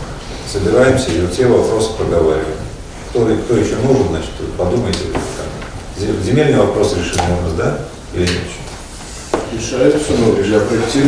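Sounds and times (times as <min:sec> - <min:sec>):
men speaking: 0:00.5 - 0:11.0.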